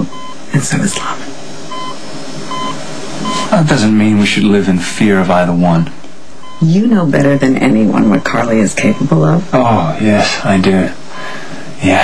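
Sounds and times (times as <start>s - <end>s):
monitor beeping: 0.0s - 4.0s, 6.4s - 9.5s, 10.4s - 11.4s
background hiss: 0.0s - 12.0s.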